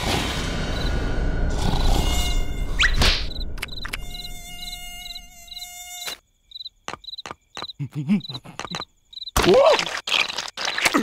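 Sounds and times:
cartoon mosquito buzzing: 1.5s - 8.4s.

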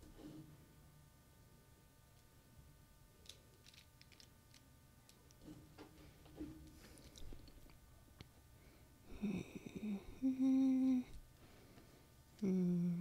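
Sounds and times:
woman humming: 9.1s - 11.2s, 12.4s - 13.0s.

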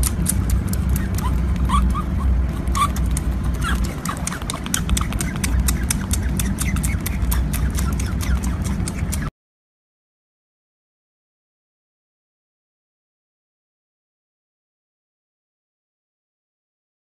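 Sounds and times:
high squeaks: 0.0s - 9.3s
low rumble: 0.0s - 9.3s.

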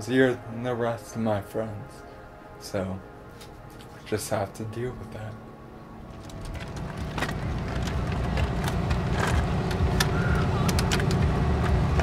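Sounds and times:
low rumble of road traffic: 0.0s - 12.0s
wheelchair handling clicks and knocks: 6.1s - 12.0s.

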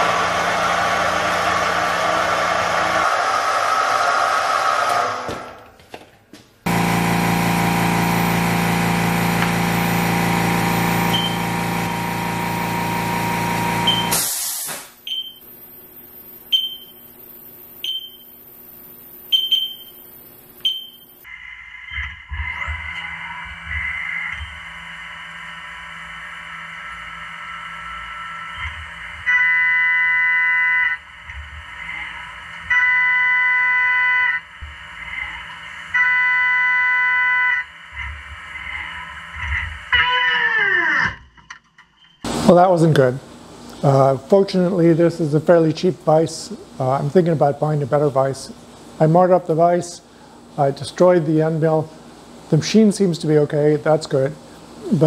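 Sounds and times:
loud steady machine sound: 0.0s - 5.4s, 6.7s - 14.5s
spindle running: 6.7s - 14.1s.

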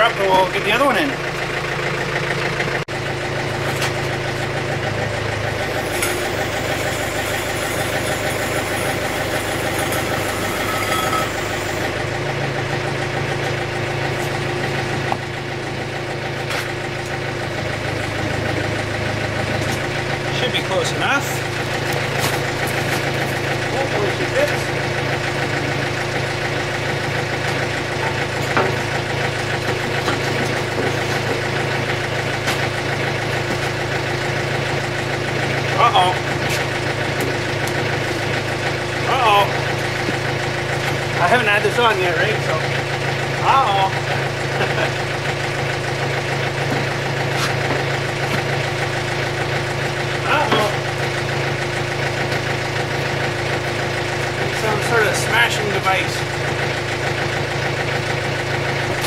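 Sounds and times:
diesel tractor idling: 0.0s - 59.0s
hydraulics lifting: 3.4s - 57.3s.

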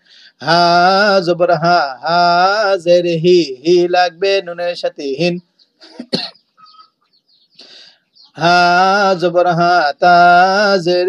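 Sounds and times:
soft intake of breath: 0.0s - 0.4s, 7.6s - 8.1s
man coughing: 5.8s - 6.9s.

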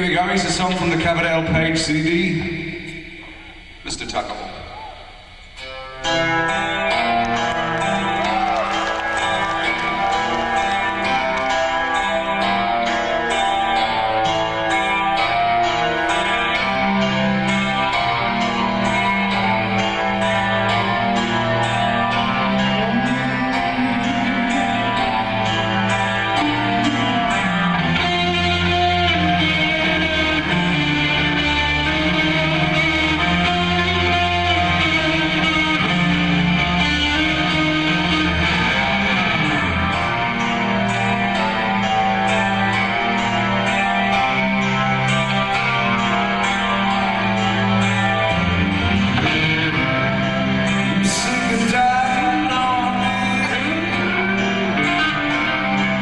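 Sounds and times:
electric guitar: 0.0s - 56.0s
rock band playing: 0.0s - 56.0s.

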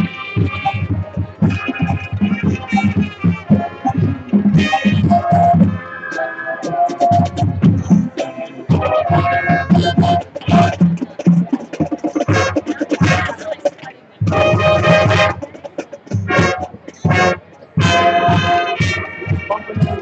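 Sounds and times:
marching band brass and percussion: 0.0s - 20.0s.

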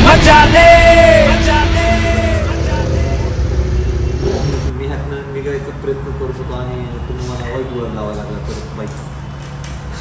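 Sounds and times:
motorcycle engine rumbling: 0.0s - 4.9s.

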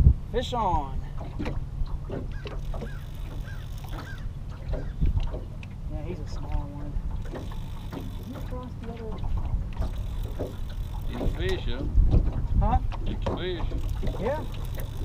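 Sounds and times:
river water moving around boat: 0.0s - 15.0s
wind buffeting microphone: 0.0s - 15.0s.

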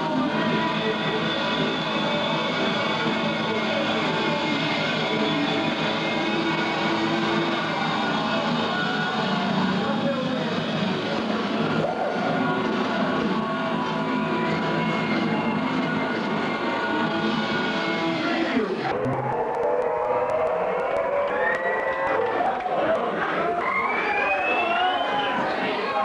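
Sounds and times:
distorted electric guitars: 0.0s - 21.1s.

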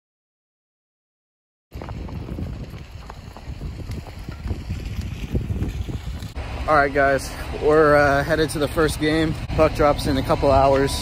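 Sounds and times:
wind buffeting microphone: 1.7s - 11.0s.

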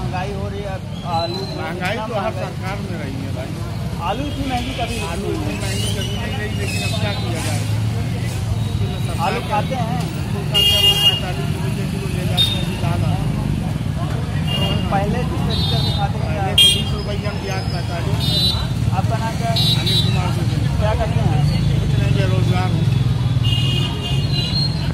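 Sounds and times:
road traffic rumble: 0.0s - 24.9s
man talking: 8.9s - 13.8s.

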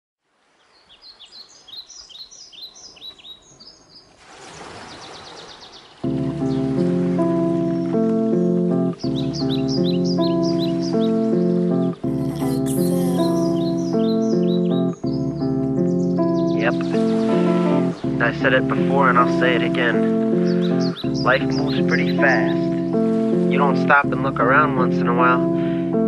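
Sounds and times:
birdsong chirps: 0.4s - 18.2s, 19.9s - 23.4s.

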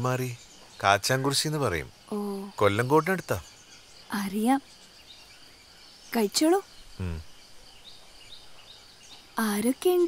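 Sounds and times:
faint insect chirping: 0.0s - 10.0s.

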